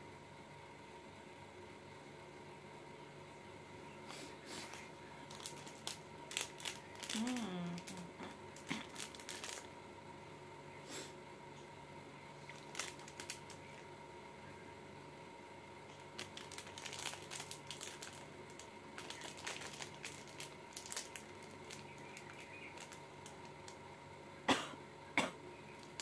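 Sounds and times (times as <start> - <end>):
faint electrical hum: 0.0 - 26.0
handling clicks and rustles: 4.6 - 9.7.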